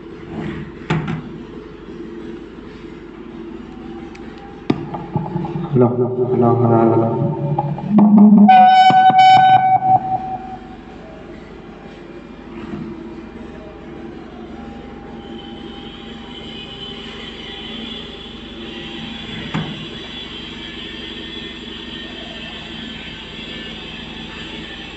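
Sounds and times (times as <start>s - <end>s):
speaker hum: 4.7s - 11.0s
faint high whine: 4.8s - 11.1s
microphone feedback howl: 4.8s - 11.1s.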